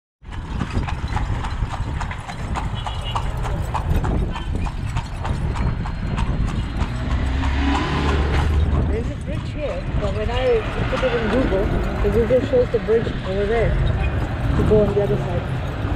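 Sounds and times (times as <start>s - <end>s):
horse hooves clip-clopping on asphalt: 0.2s - 15.9s.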